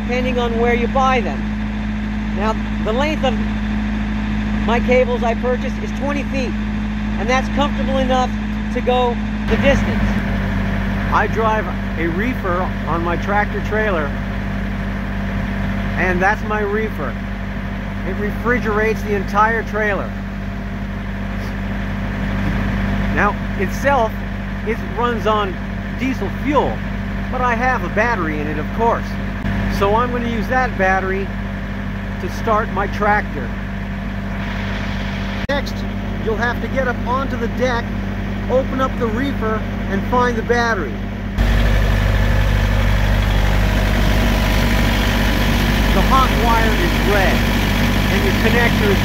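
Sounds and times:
refrigeration unit diesel engine drone: 0.0 - 49.0.

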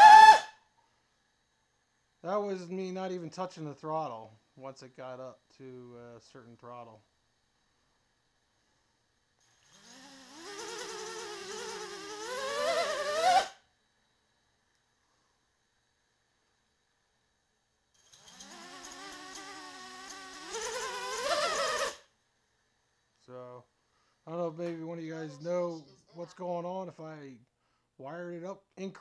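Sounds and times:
drone motors whining: 9.4 - 13.5, 18.0 - 22.0.

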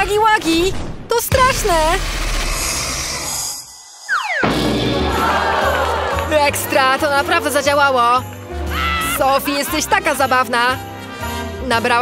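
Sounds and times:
falling whistle glide: 3.8 - 4.5.

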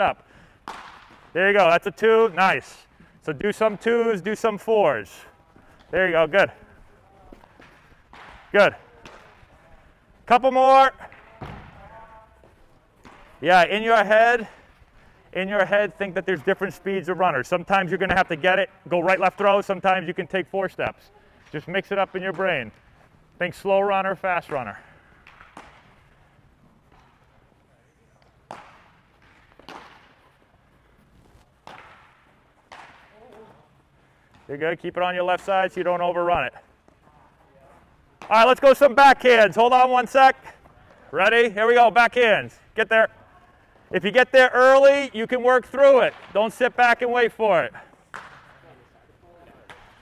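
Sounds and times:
baseballs smacking into gloves: 0.6 - 1.4, 5.0 - 9.8, 10.6 - 15.2, 24.4 - 27.4, 28.1 - 34.6, 45.8 - 47.0, 47.7 - 48.8, 49.4 - 50.0
man speaking: 5.9 - 7.4.

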